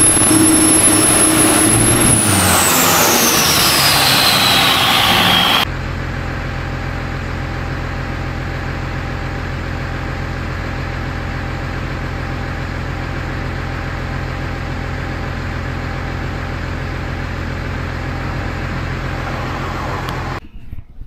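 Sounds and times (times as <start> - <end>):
turbo whistle falling in pitch: 0.0 - 5.7
diesel engine droning under load: 0.0 - 20.4.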